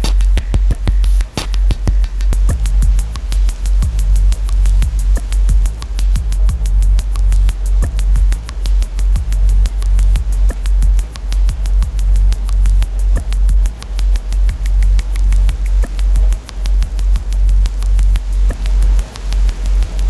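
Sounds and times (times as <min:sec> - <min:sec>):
deep bass drone: 0:00.0 - 0:20.0
rapid ticking pulse: 0:00.0 - 0:20.0.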